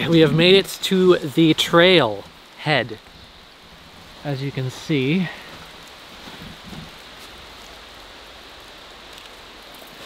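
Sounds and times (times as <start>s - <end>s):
hiss of wet snow falling: 0.0s - 10.0s.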